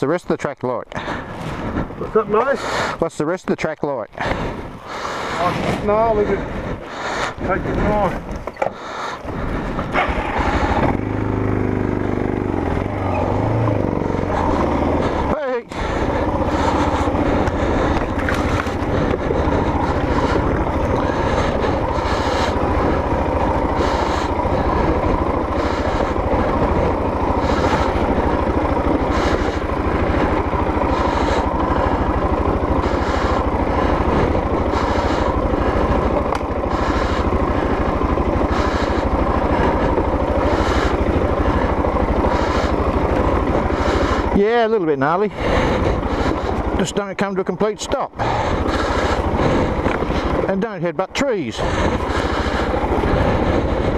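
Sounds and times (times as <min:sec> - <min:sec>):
motorcycle engine running: 0:00.0 - 0:53.9.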